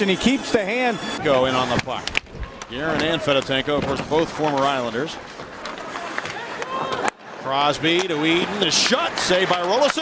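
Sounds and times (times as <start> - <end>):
crowd hum: 0.0 - 10.0
hockey sticks and puck clicking: 1.7 - 10.0.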